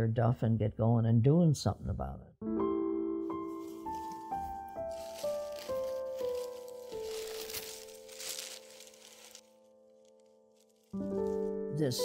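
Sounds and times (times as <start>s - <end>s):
soft piano music: 2.4s - 12.0s
tissue paper rustling: 3.4s - 11.5s.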